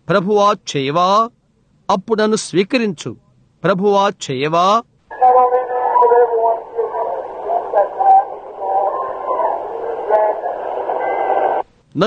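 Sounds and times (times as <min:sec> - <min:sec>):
voice on old recording: 0:01.9 - 0:12.0
tape hiss: 0:05.0 - 0:12.0.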